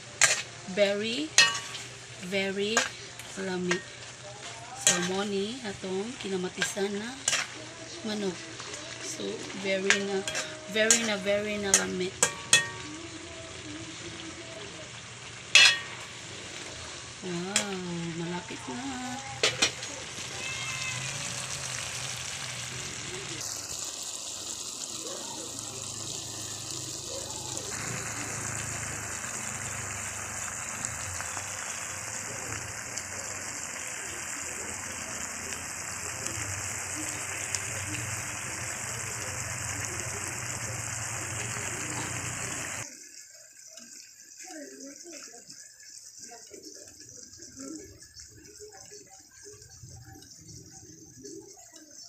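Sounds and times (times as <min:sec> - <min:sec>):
stew simmering and sizzling in a pan: 0:00.0 - 0:52.0.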